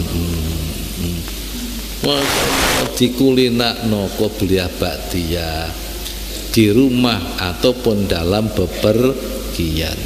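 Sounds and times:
low hum and hiss: 0.0s - 10.0s.

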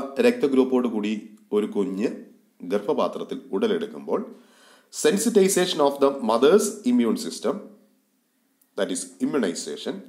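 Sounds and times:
person talking: 0.0s - 4.3s, 4.9s - 7.7s, 8.8s - 10.0s
faint breath intake: 4.3s - 5.0s.

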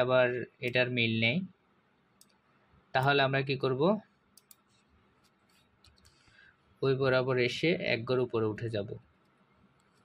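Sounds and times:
computer mouse clicks: 2.2s - 2.4s, 4.3s - 6.3s, 9.2s - 10.0s.

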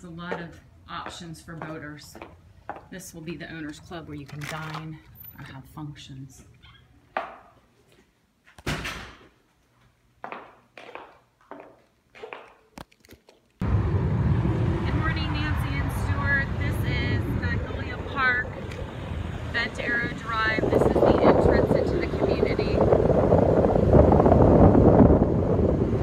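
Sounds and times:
car road noise: 13.6s - 26.0s
wind rushing over microphone: 13.6s - 26.0s.

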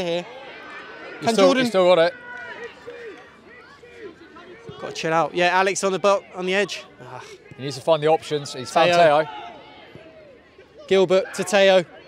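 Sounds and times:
distant shouts and calls: 0.0s - 12.0s.

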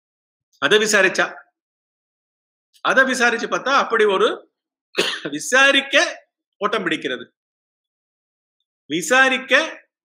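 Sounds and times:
man speaking: 0.6s - 1.6s, 2.8s - 7.4s, 8.9s - 10.0s
man clearing his throat: 5.0s - 5.4s.

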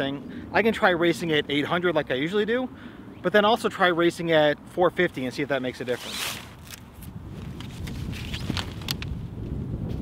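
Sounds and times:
wind buffeting microphone: 6.8s - 10.0s.

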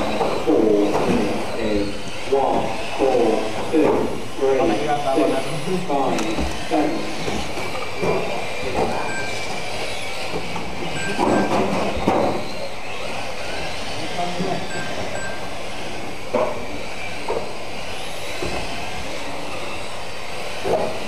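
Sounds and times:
electric rc car motors whining: 0.0s - 21.0s.

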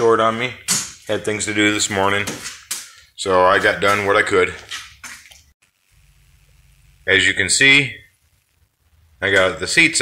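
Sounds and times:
faint low hum: 5.6s - 10.0s.

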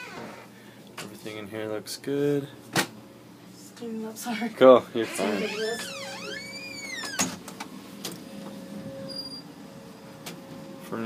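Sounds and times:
door squeaking: 0.0s - 0.5s, 5.0s - 7.4s, 9.0s - 9.5s
steady low hum: 5.9s - 11.0s.

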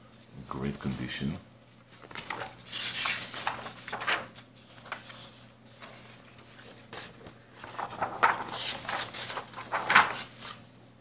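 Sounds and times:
paper and cardboard rustling: 1.9s - 10.7s.

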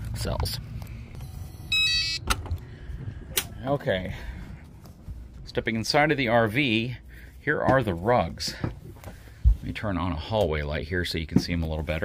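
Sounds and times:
electronic chime: 1.7s - 2.2s.

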